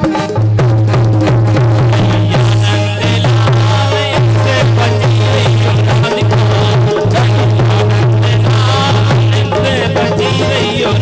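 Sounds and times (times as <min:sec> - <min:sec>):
drums: 0:00.0 - 0:11.0
wavering melody line: 0:00.0 - 0:11.0
low bass drone note: 0:00.4 - 0:11.0.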